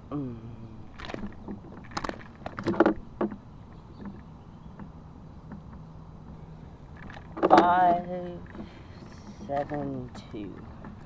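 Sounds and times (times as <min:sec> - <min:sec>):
faint low hum: 0:00.0 - 0:11.0
sharp knocks and rustles: 0:00.9 - 0:11.0.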